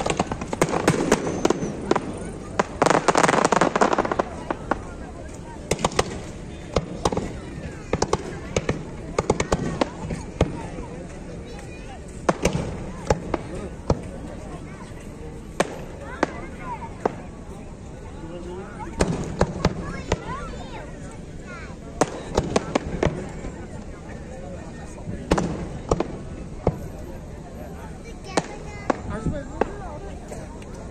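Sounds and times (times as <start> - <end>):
fireworks bangs: 0.0 - 10.9, 12.2 - 14.2, 15.5 - 17.4, 18.9 - 20.4, 21.9 - 23.8, 25.1 - 27.1
voices in background: 0.0 - 30.9.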